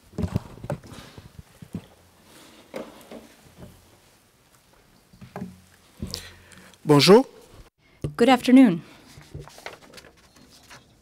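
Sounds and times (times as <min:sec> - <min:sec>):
microphone handling knocks and bumps: 0:00.0 - 0:01.9.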